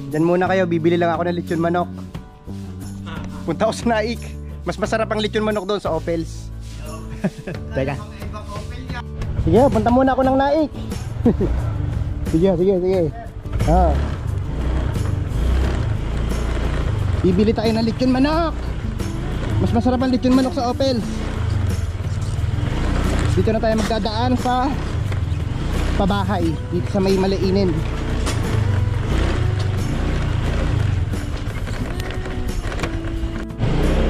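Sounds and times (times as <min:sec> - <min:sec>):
background music with heavy bass: 0:00.0 - 0:34.0
scooter engine running: 0:13.4 - 0:34.0.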